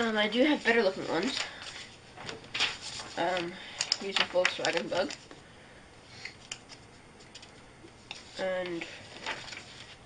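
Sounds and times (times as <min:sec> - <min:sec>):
hand rustling paper sheets: 0:00.1 - 0:05.3, 0:06.4 - 0:10.0.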